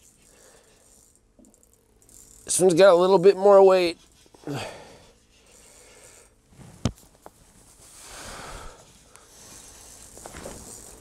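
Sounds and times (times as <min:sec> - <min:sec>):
fishing reel whirring and clicking: 0:00.0 - 0:06.5, 0:08.4 - 0:11.0.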